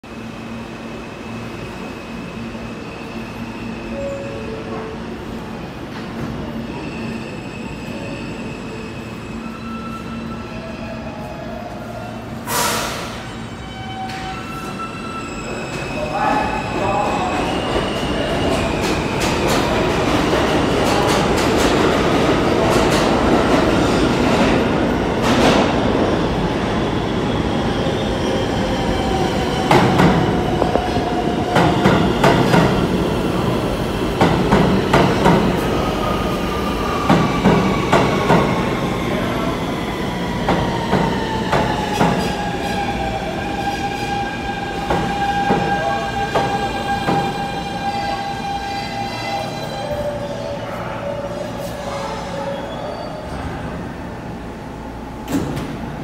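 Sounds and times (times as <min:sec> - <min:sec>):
subway train rumble: 0:00.0 - 0:56.0.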